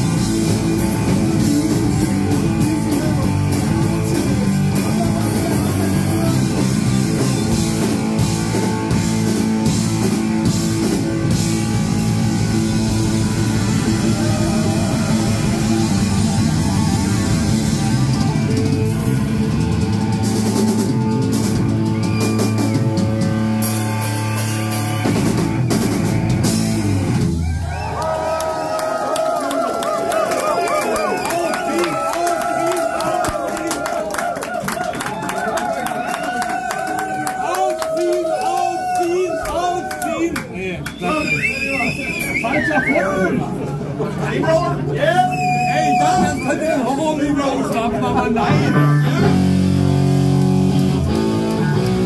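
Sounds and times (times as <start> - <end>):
live rock band playing: 0.0 - 27.9, 47.8 - 52.0
crowd cheering and shouting: 0.0 - 52.0
shouted vocals: 13.4 - 17.6, 27.4 - 40.4.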